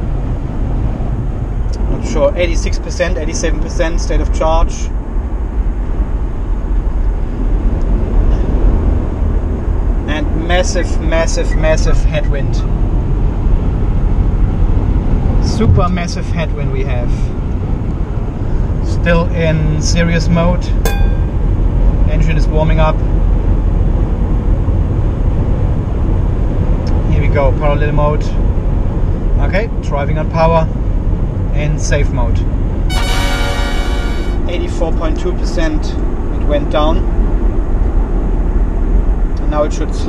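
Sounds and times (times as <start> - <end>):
road and wind noise in car: 0.0 - 20.7, 22.3 - 32.8, 35.2 - 40.0.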